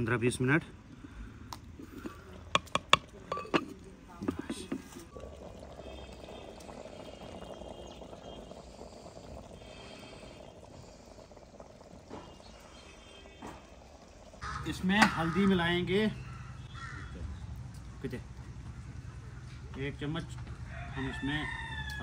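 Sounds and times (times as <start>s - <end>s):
soft simmering in pot: 0.0s - 22.0s
clay lid knocking on pot rim: 2.5s - 4.5s.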